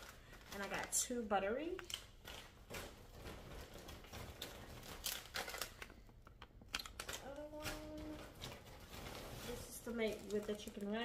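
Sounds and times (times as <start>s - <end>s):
plastic bags rustling: 0.0s - 11.0s
person humming: 7.2s - 8.3s.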